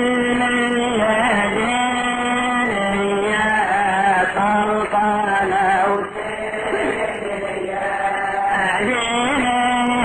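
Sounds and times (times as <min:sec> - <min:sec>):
man chanting: 0:00.0 - 0:06.1, 0:08.5 - 0:10.0.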